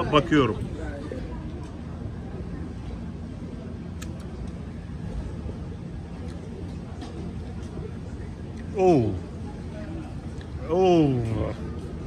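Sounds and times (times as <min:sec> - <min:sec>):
low street hum: 0:00.0 - 0:12.0.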